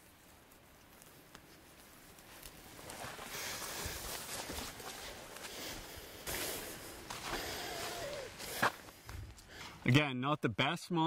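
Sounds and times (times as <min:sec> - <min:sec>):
footsteps on forest floor: 0:00.0 - 0:10.0
rustling branches and undergrowth: 0:00.0 - 0:10.1.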